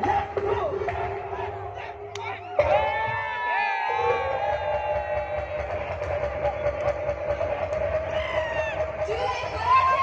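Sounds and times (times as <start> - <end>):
crowd noise: 0.0 - 10.0
loud dance music over pa: 0.0 - 10.0.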